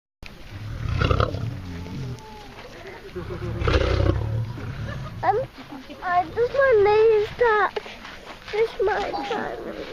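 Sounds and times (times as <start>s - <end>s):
lion growling: 0.5s - 2.5s, 3.2s - 5.4s.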